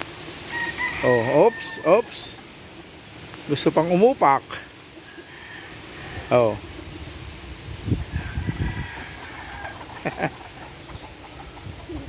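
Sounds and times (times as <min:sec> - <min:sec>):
chickens and roosters calling: 0:00.0 - 0:12.0.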